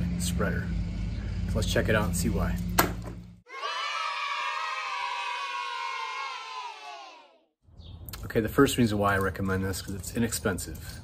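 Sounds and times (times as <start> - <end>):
children cheering yay: 3.5 - 7.4.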